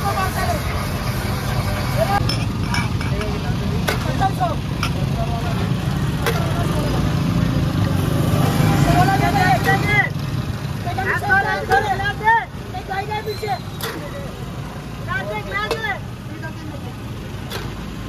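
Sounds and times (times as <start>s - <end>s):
people talking: 0.0s - 1.0s, 1.6s - 2.3s, 3.0s - 7.2s, 8.7s - 10.2s, 10.8s - 17.6s
vehicle engine rumbling: 0.0s - 18.0s.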